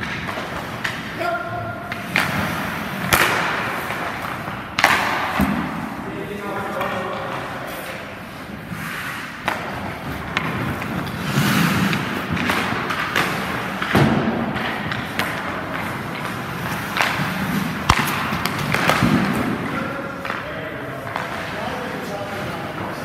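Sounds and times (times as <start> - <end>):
pucks hitting goalie and net: 0.0 - 23.0
sticks striking pucks: 0.0 - 23.0
skate blades scraping ice: 0.1 - 1.2, 1.8 - 6.0, 6.7 - 23.0.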